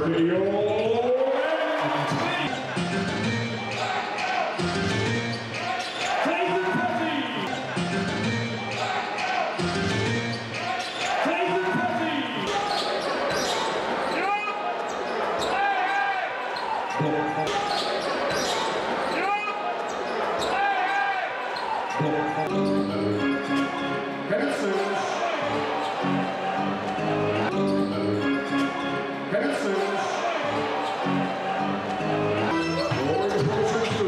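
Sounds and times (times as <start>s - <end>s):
crowd voices: 0.0s - 34.0s
music in the hall: 2.0s - 14.2s, 21.3s - 34.0s
shoes squeaking on hardwood court: 12.5s - 14.2s, 16.6s - 19.2s, 26.8s - 28.8s.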